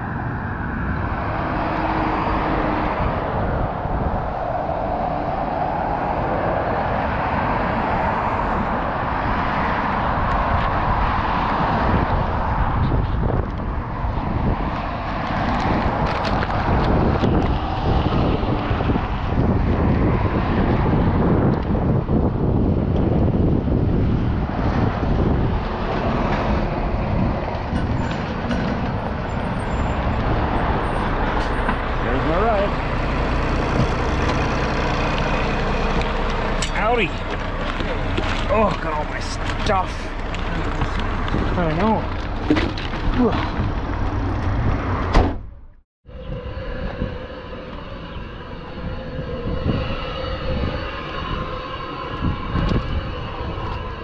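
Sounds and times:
cars and trucks driving past: 0.0 - 54.0.

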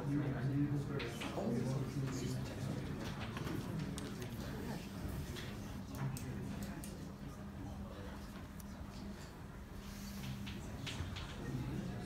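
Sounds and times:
low room murmur: 0.0 - 12.0.

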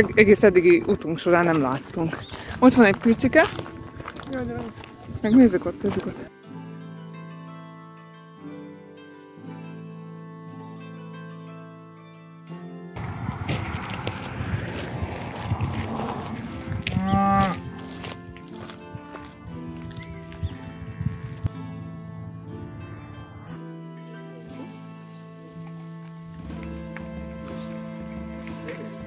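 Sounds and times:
background music: 0.0 - 29.0
cow mooing: 15.2 - 17.7.

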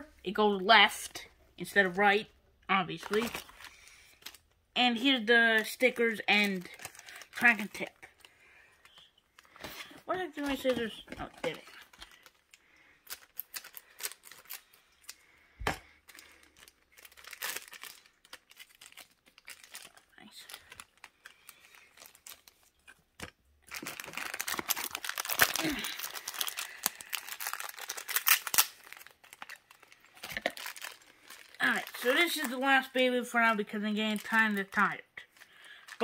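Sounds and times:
plastic bags crinkling: 2.9 - 4.6, 5.6 - 15.2, 15.8 - 36.0.

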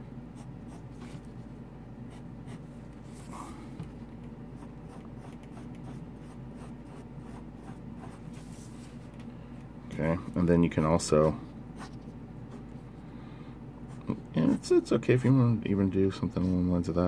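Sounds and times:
pencil scratching on paper: 0.4 - 1.2, 4.6 - 8.7.

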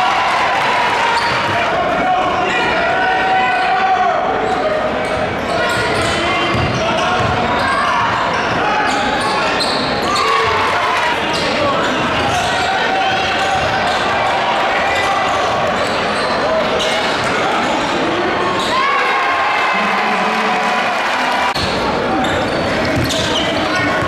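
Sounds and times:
crowd voices and shouts: 0.0 - 24.0
basketball bouncing: 22.9 - 23.3.

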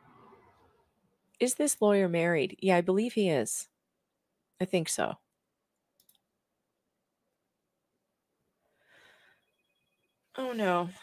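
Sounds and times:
computer mouse clicks: 5.8 - 6.3.

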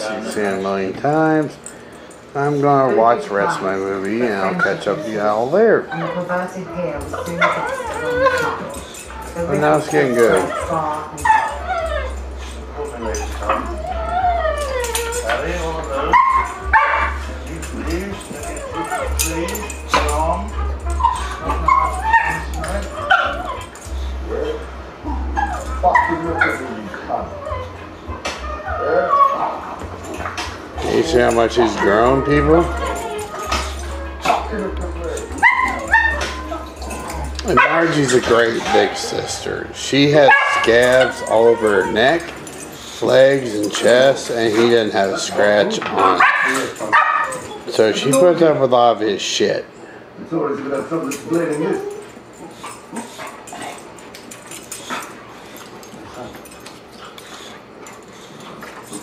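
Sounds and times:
dogs play-wrestling: 0.0 - 59.0
dog whining: 2.3 - 48.6, 50.7 - 59.0.

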